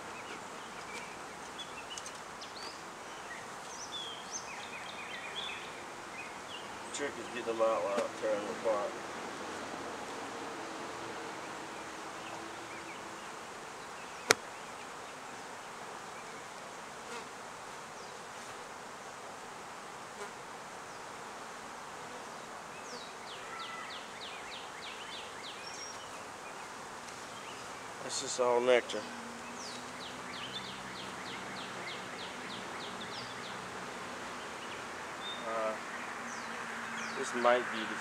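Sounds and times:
honey bees buzzing: 0.0 - 38.0.

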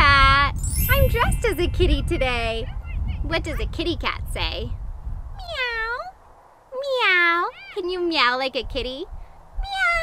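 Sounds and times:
cat meowing: 9.6 - 10.0.

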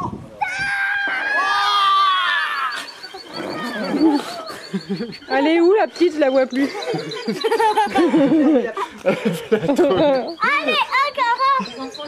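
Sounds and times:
children shrieking: 0.0 - 9.4, 10.0 - 12.0
voices calling out: 0.0 - 12.0.

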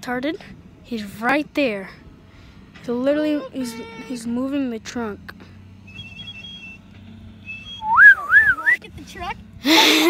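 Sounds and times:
low steady hum: 0.0 - 10.0
person whistling a wavering note: 5.9 - 6.8, 7.4 - 8.8.

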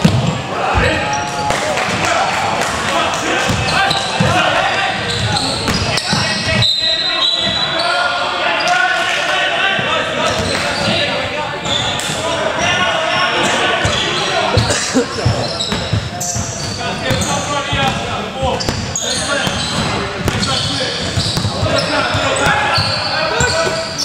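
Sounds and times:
players calling out: 0.4 - 24.0
basketball bouncing on wooden floor: 15.2 - 23.6.

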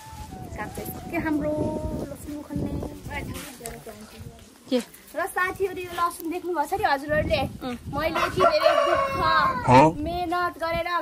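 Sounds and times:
rooster crowing: 8.1 - 9.7.

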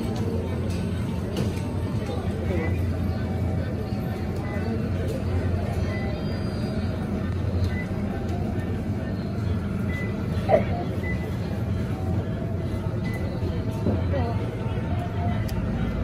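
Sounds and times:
faint indistinct voices: 0.0 - 16.0
quiet background music: 0.0 - 16.0.

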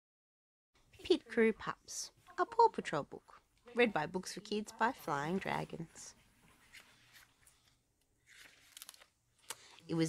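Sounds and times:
faint rustle of book pages: 4.8 - 10.0
paper sliding: 6.6 - 9.1.

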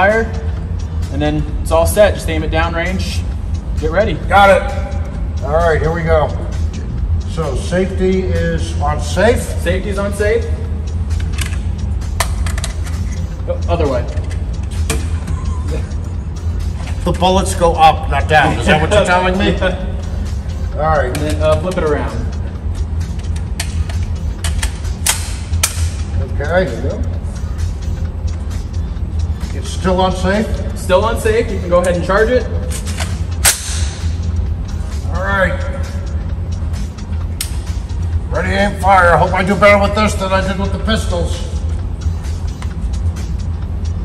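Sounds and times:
low hum: 0.0 - 44.0.

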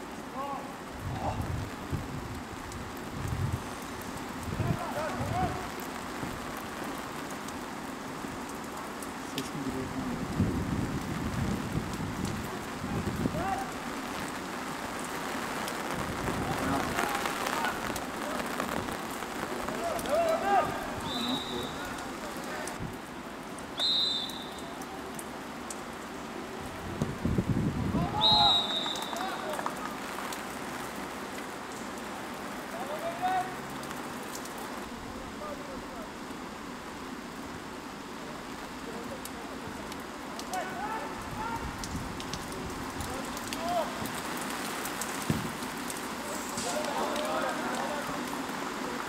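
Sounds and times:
players shouting: 19.6 - 22.6
referee's whistle blowing: 21.0 - 21.9, 23.8 - 24.7, 28.1 - 29.5.

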